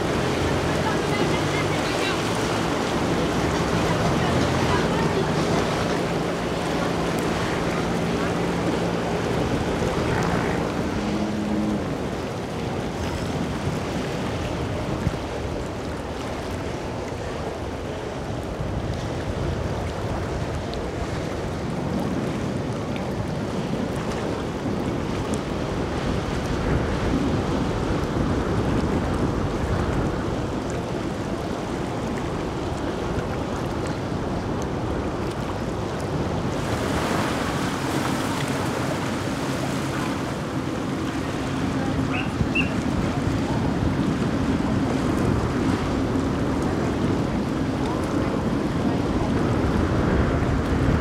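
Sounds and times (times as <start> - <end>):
motor boat engines and wake: 0.0 - 51.0
wind buffeting microphone: 0.0 - 51.0.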